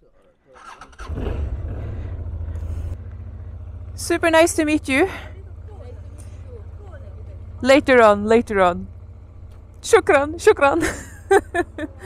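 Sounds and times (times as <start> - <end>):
motorcycle engine idling: 0.6 - 12.0.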